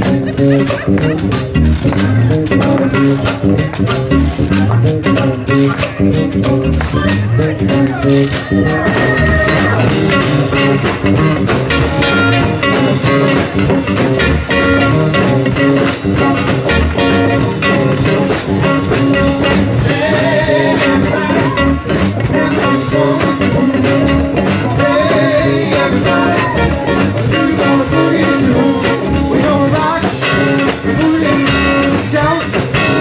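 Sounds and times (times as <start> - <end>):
blues-rock band playing: 0.0 - 33.0
lead vocal singing: 17.4 - 33.0.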